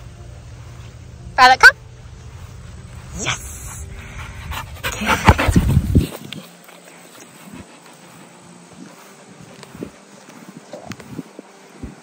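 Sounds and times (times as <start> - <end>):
dog panting: 3.5 - 9.0.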